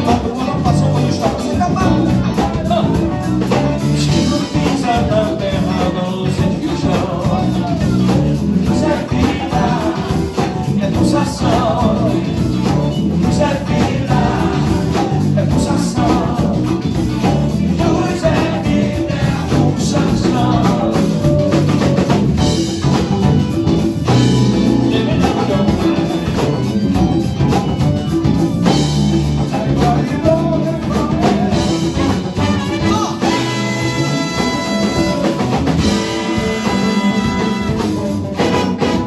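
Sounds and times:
person singing: 0.0s - 22.1s, 24.4s - 27.2s, 28.7s - 39.0s
bass: 0.0s - 39.0s
drum kit: 0.0s - 39.0s
electric guitar: 0.0s - 39.0s
keyboard: 0.0s - 39.0s
horn section: 29.0s - 39.0s.

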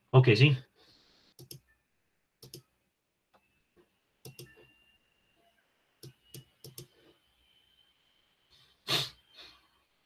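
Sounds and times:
computer mouse clicks: 1.4s - 1.6s, 2.4s - 2.7s, 4.2s - 4.7s, 6.0s - 7.0s.

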